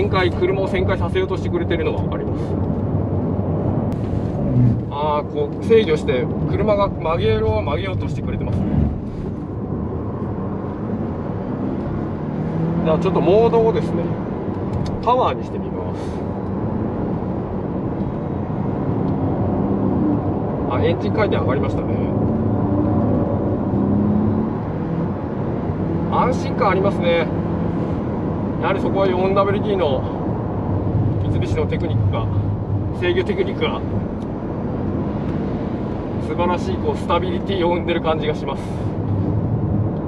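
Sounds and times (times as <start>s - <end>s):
tyre and road noise: 0.0s - 40.0s
car engine accelerating: 1.9s - 15.1s, 16.3s - 37.9s.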